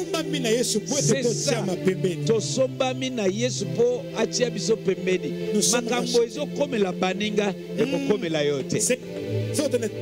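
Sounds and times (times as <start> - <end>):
man talking: 0.0 - 10.0
soft background music: 0.0 - 10.0.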